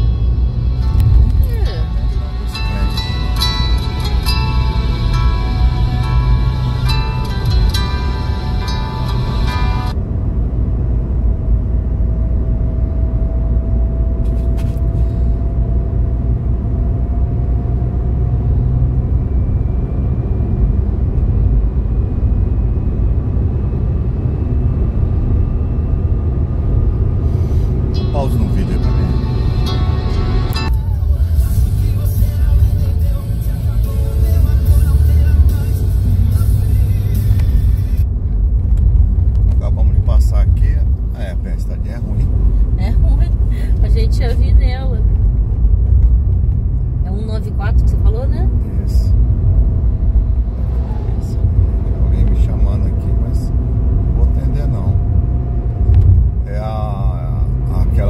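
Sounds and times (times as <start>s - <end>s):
car interior road rumble: 0.0s - 58.0s.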